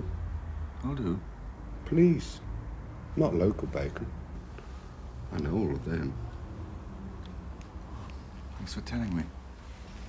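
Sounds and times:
low steady room hum: 0:00.0 - 0:10.0.

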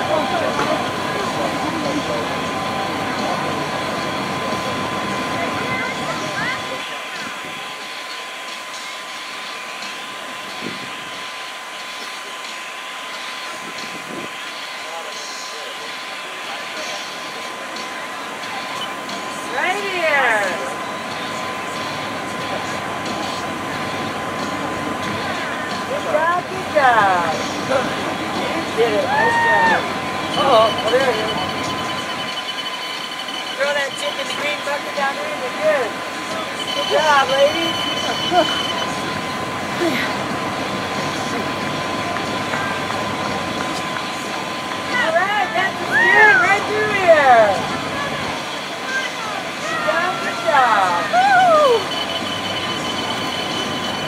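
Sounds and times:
crowd background noise: 0:00.0 - 0:54.0
high-pitched tone: 0:16.4 - 0:54.0
voices calling out: 0:17.6 - 0:54.0.

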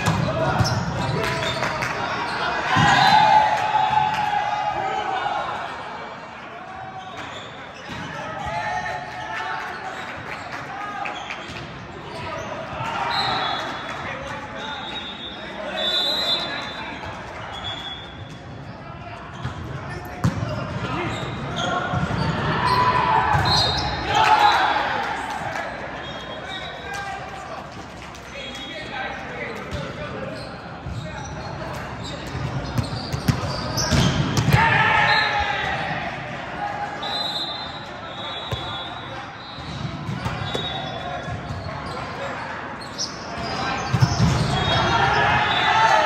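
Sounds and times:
volleyball bouncing on court: 0:00.0 - 0:01.3, 0:19.4 - 0:20.9, 0:23.3 - 0:23.8, 0:32.2 - 0:34.8, 0:39.6 - 0:41.7, 0:43.4 - 0:44.7
players shouting: 0:00.0 - 0:07.5, 0:20.5 - 0:27.5, 0:32.9 - 0:39.5, 0:43.3 - 0:46.0.

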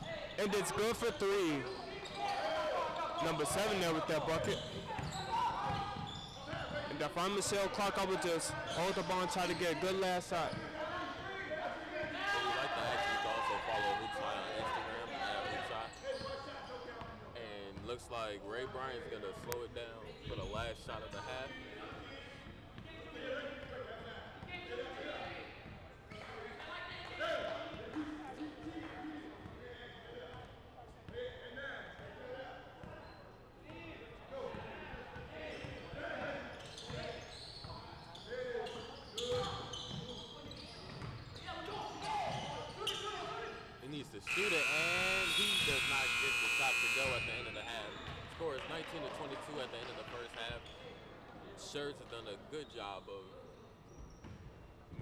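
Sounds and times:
players' voices echoing: 0:00.0 - 0:25.4, 0:26.2 - 0:32.9, 0:41.6 - 0:53.3
scoreboard horn blast: 0:44.3 - 0:47.6.

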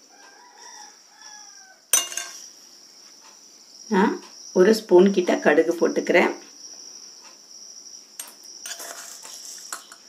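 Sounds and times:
mustard seeds ticking in hot oil: 0:06.4 - 0:10.0.

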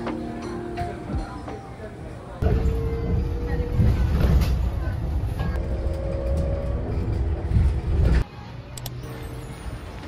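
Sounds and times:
bus cabin low rumble: 0:02.3 - 0:10.0
humming tone: 0:02.4 - 0:08.2.

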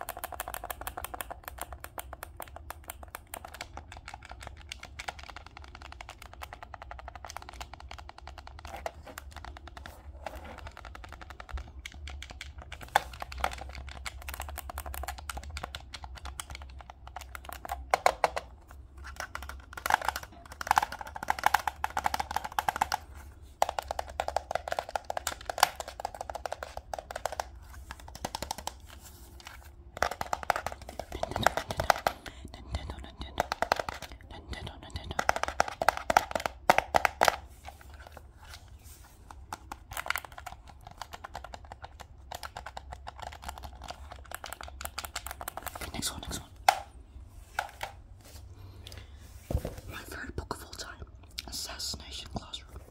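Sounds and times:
fingers clicking game controller: 0:00.0 - 0:46.9.

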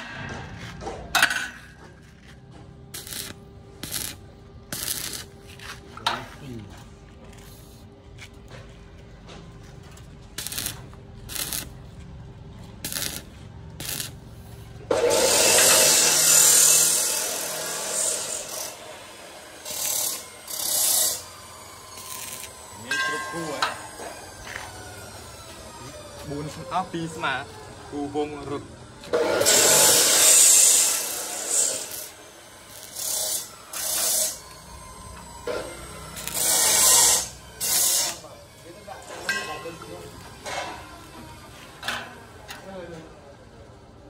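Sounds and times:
welding arc crackling and hissing: 0:02.9 - 0:05.4, 0:10.3 - 0:11.8, 0:12.8 - 0:23.4, 0:29.4 - 0:34.6, 0:36.0 - 0:38.3.

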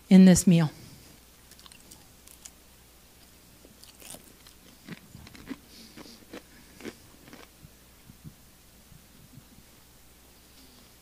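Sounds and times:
woman chewing crisp cracker: 0:01.5 - 0:02.6, 0:03.2 - 0:07.6.

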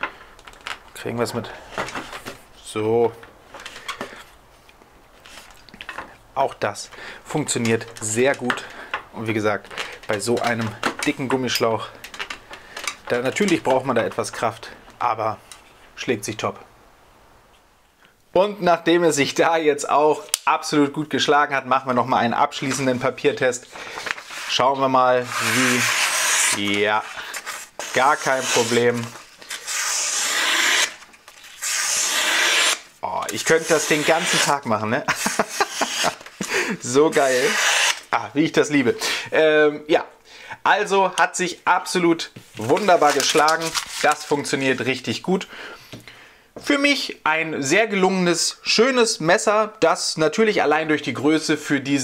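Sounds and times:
blade scraping plastic hose: 0:23.9 - 0:36.5, 0:37.1 - 0:38.1
knife slicing through paper: 0:25.2 - 0:32.8, 0:33.4 - 0:34.6, 0:37.1 - 0:38.0.

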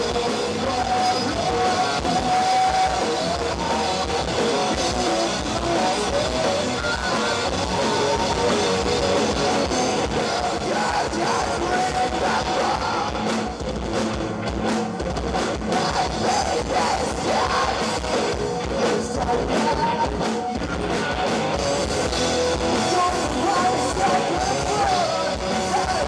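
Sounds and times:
singer shouting vocals: 0:00.0 - 0:13.4, 0:15.6 - 0:20.9, 0:22.8 - 0:26.0
bass guitar: 0:00.0 - 0:26.0
distorted electric guitars: 0:00.0 - 0:26.0
drum kit: 0:00.0 - 0:26.0.

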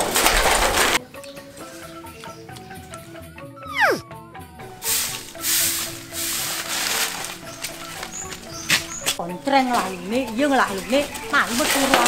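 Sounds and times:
light background music: 0:00.7 - 0:12.0
falling whistle sound effect: 0:03.6 - 0:04.0
rustling scraping bursts: 0:04.8 - 0:09.2.

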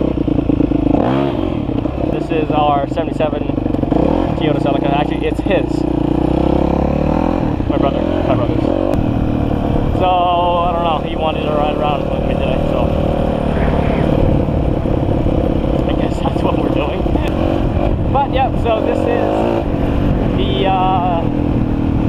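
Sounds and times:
dirt bike engine revving: 0:00.0 - 0:22.0
wind rumble on microphone: 0:07.1 - 0:22.0.

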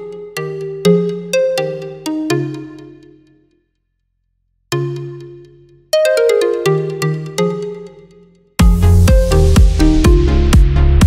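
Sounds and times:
bell-like music notes: 0:00.0 - 0:03.4, 0:04.7 - 0:10.6.

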